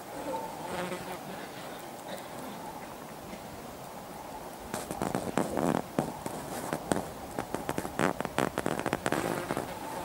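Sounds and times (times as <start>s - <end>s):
flying insects buzzing: 0.0s - 2.8s, 4.7s - 10.0s.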